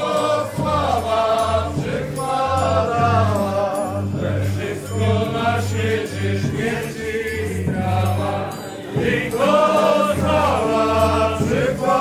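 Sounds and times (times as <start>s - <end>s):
live folk band music: 0.0s - 12.0s.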